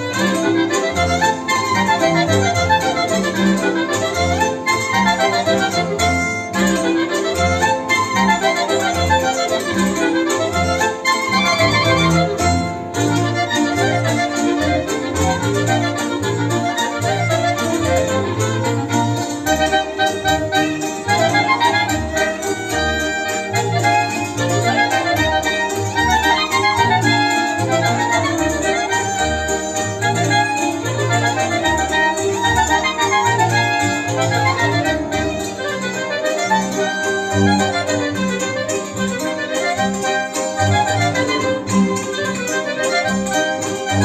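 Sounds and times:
double bass beat: 0.0s - 44.0s
folk band instrumental: 0.0s - 44.0s.

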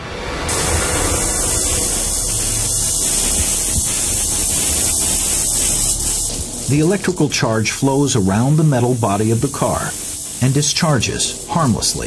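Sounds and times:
low hum: 0.0s - 7.4s
tesla coil buzzing: 0.1s - 12.0s
electric arcs cracking: 0.4s - 12.0s.

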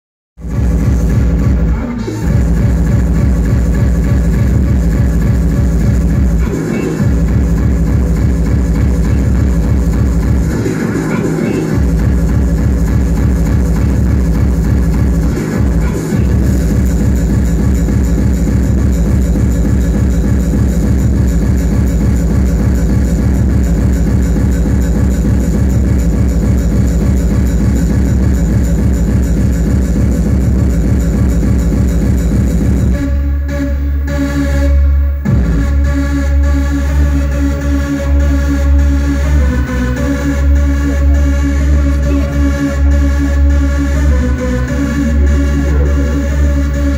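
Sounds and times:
electronic dance music: 0.4s - 46.9s.

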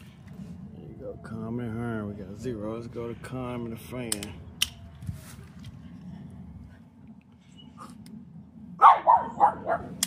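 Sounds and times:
dog barking: 8.8s - 10.0s.

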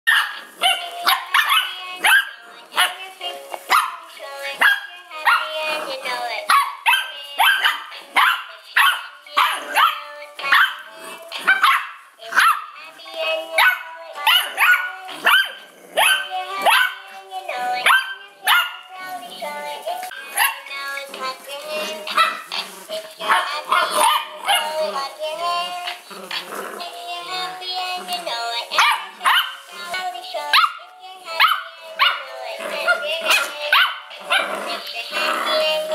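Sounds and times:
puppies barking: 0.1s - 3.0s, 3.6s - 12.8s, 13.5s - 18.9s, 20.0s - 20.8s, 21.8s - 25.1s, 28.7s - 29.7s, 30.4s - 35.9s.

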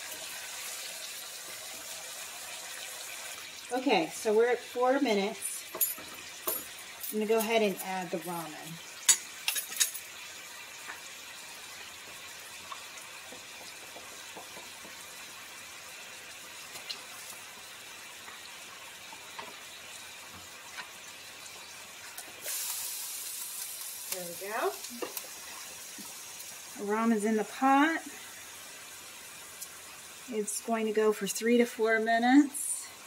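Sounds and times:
meat sizzling in a frying pan: 0.0s - 33.0s.

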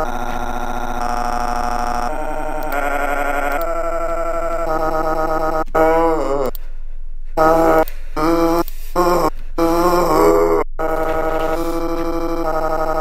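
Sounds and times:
falling wail: 0.0s - 6.6s, 7.4s - 13.0s.

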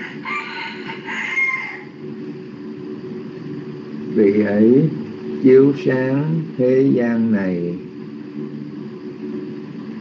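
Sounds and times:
rooster crowing: 0.0s - 2.0s
steady low hum: 0.0s - 10.0s.

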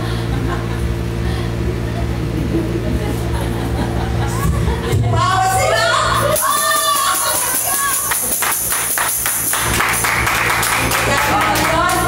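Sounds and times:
rhythmic hand-clapping: 6.3s - 12.0s
applause: 6.4s - 12.0s.

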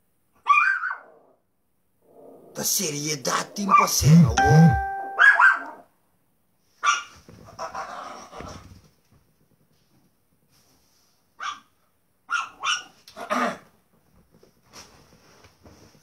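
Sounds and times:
dog barking: 6.8s - 7.1s, 11.4s - 11.7s, 12.3s - 13.5s.

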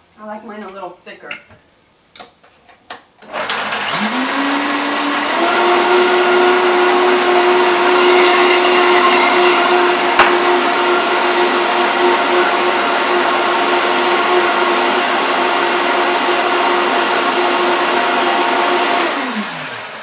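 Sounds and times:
blender motor whirring: 3.2s - 20.0s.

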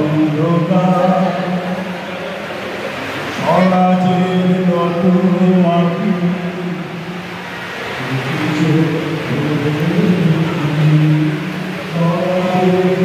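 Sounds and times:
man chanting through loudspeaker: 0.0s - 7.4s, 8.0s - 13.0s
room noise: 0.0s - 13.0s.

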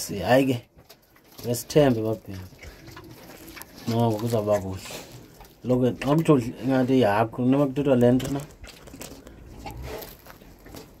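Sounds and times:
pig chewing: 0.0s - 11.0s.

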